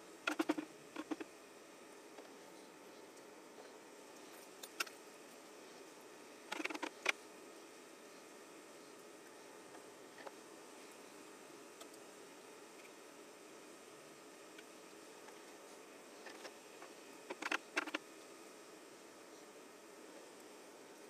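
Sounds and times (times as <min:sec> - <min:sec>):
low steady hiss: 0:00.0 - 0:21.0.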